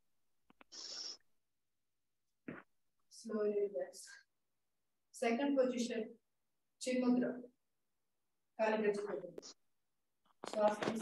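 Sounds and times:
short breath close to microphone: 0.7 - 1.2.

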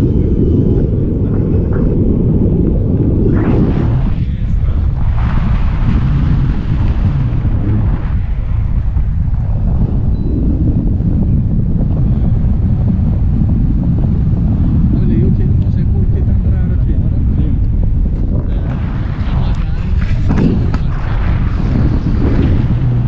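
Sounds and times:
wind buffeting microphone: 0.0 - 23.0.

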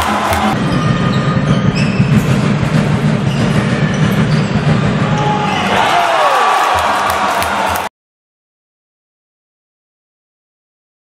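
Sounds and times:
people shouting: 0.0 - 0.6, 5.1 - 7.9
crowd noise in indoor hall: 0.0 - 7.9.

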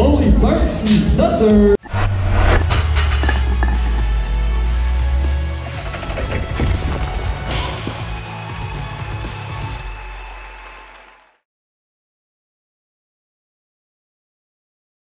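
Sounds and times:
music: 0.0 - 11.4
deep bass boom: 1.8 - 8.2
shattering impact effects: 1.9 - 4.3.

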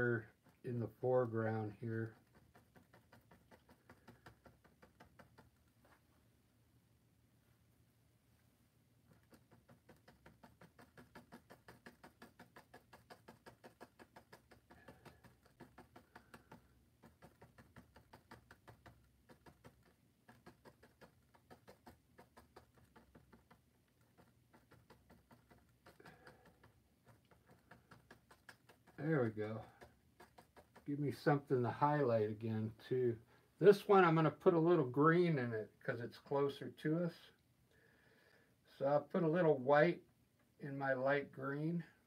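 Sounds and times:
paintbrush dabbing on canvas: 0.0 - 6.1, 9.0 - 32.6.

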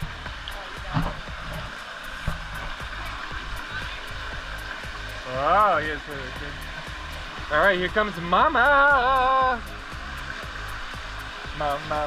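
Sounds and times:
waterfall splashing into pool: 0.0 - 12.0.

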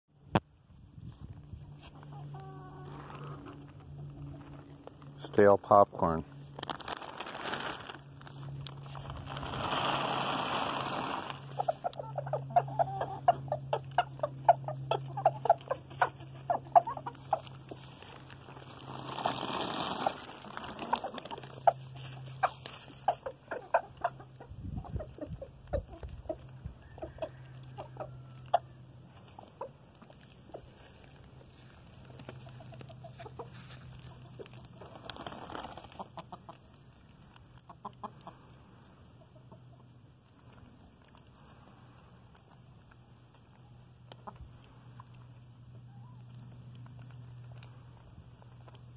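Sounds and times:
chickens clucking: 1.4 - 5.1, 9.2 - 48.9
popcorn rustling in plastic bag: 4.4 - 11.8, 17.1 - 23.0, 33.5 - 36.0.

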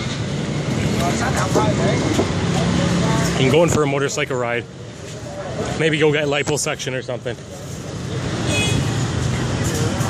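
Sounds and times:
motor scooter engines: 0.0 - 10.0.

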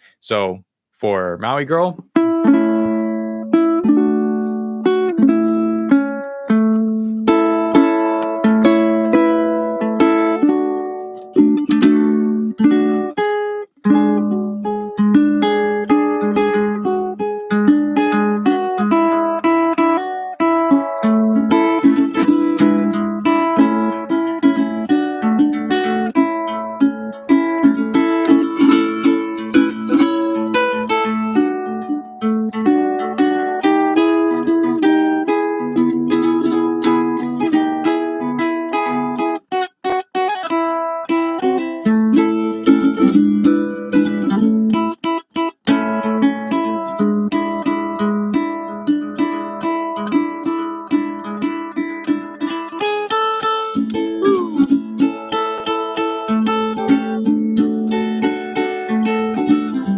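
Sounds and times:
fingerpicked ukulele: 2.0 - 59.9.

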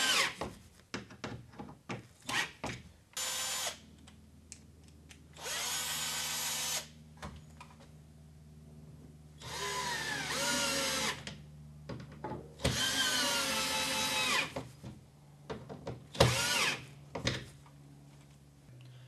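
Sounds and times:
cordless drill whining: 5.4 - 6.9, 9.4 - 11.2, 12.6 - 14.5, 16.2 - 16.8.

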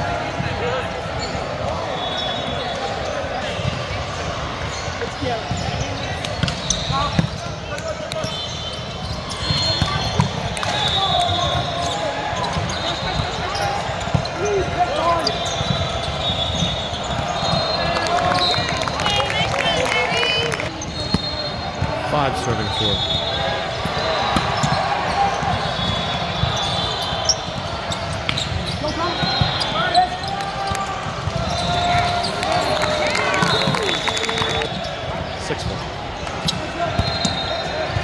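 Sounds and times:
voices of players and spectators: 0.0 - 38.0.

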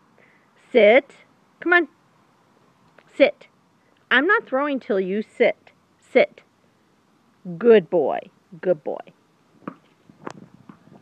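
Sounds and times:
faint taps and scuffs: 9.6 - 11.0.

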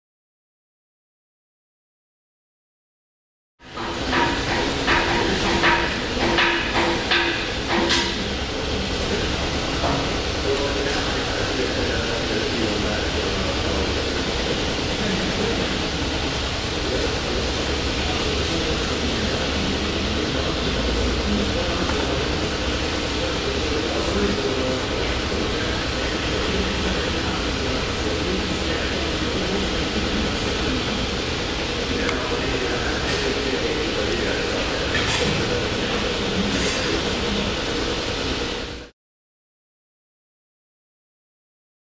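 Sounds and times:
refrigeration chiller running: 3.6 - 38.9
sharp mechanical clicks and knocks: 3.8 - 8.2.

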